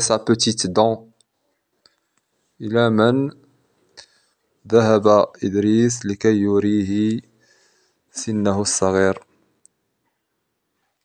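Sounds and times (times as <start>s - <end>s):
person speaking: 0.0s - 1.2s, 2.6s - 3.4s, 4.7s - 7.3s, 8.2s - 9.2s.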